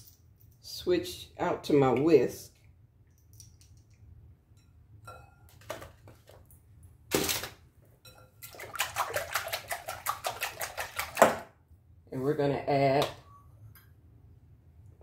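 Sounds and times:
whisk beating eggs in glass bowl: 0:08.1 - 0:11.4.

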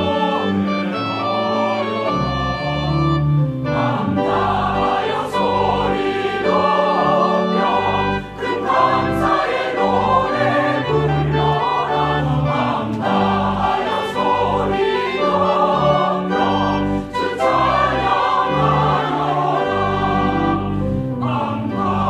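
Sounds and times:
choir singing: 0:00.0 - 0:22.0.

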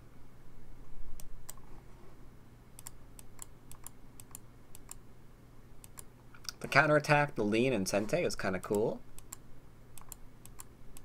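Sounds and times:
computer mouse clicks: 0:01.2 - 0:01.7, 0:02.8 - 0:05.0, 0:05.8 - 0:06.6, 0:08.6 - 0:09.4, 0:10.0 - 0:11.0.

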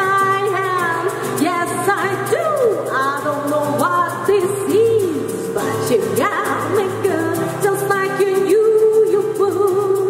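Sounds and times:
strummed acoustic guitar: 0:00.0 - 0:10.0
tube shaker ticking: 0:00.0 - 0:10.0
woman singing: 0:00.0 - 0:10.0.

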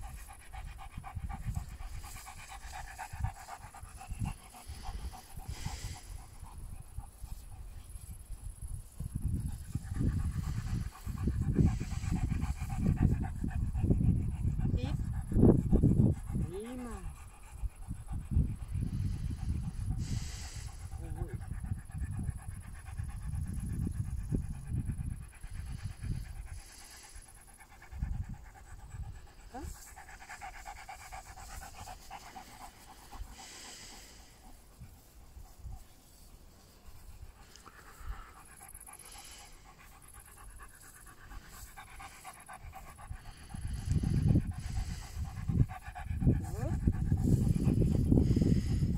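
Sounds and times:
dog panting: 0:00.0 - 0:48.9
wind buffeting microphone: 0:00.0 - 0:48.9.

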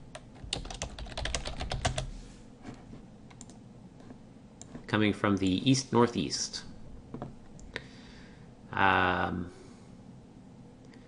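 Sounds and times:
computer keyboard typing: 0:00.1 - 0:02.1, 0:03.3 - 0:04.9.

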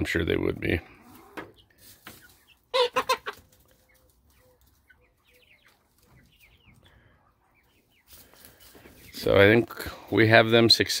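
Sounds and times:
chickens clucking: 0:00.0 - 0:11.0.

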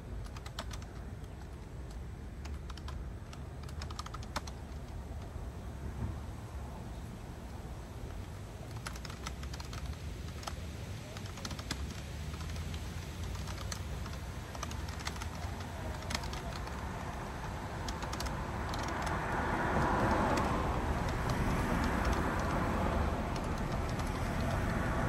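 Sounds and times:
steady low rumble: 0:00.0 - 0:25.0
keyboard keys clicking: 0:00.2 - 0:05.3, 0:08.2 - 0:25.0
rushing noise: 0:04.4 - 0:25.0.

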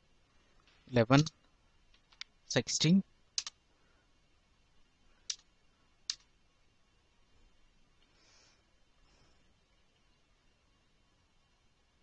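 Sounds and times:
computer keyboard keystroke: 0:01.1 - 0:01.3, 0:03.4 - 0:03.6.

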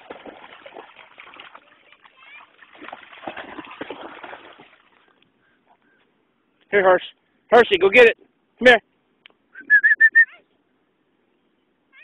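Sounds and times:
splashing and sloshing water: 0:00.0 - 0:05.8.

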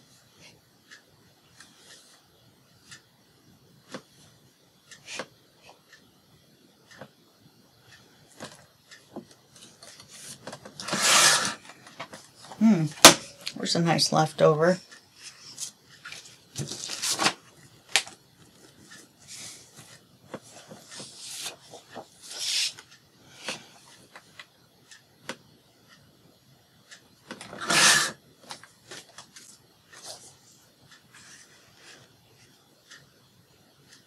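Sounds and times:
paper rustling and scraping: 0:09.8 - 0:11.6, 0:15.5 - 0:17.4, 0:19.3 - 0:22.8, 0:27.5 - 0:28.2.

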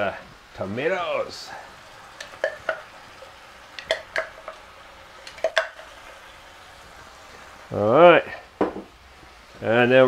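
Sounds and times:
wooden spoon knocking on container: 0:02.2 - 0:02.8.

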